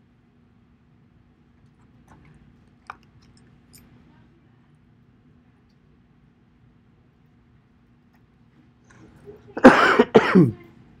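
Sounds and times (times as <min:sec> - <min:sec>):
person coughing: 0:09.6 - 0:10.6.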